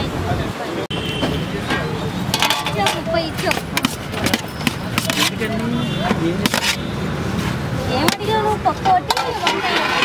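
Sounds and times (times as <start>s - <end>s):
voices chattering: 0.0s - 10.0s
steel pots and plates clinking: 2.3s - 5.5s, 8.0s - 10.0s.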